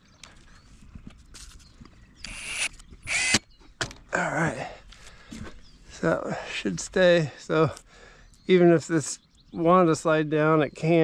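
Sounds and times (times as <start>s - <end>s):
impact driver driving screw: 2.2s - 3.4s.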